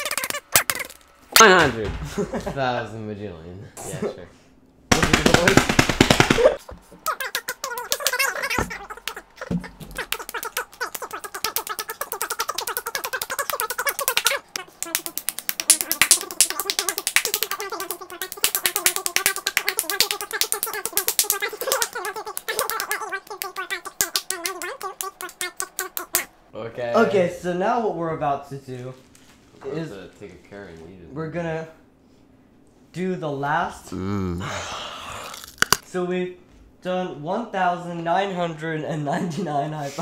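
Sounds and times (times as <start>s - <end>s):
hands slapping in high fives: 7.8s - 26.3s.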